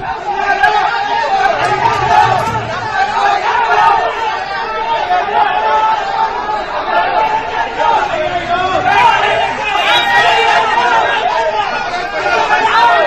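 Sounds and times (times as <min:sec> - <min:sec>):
crowd of protesters shouting: 0:00.0 - 0:13.0.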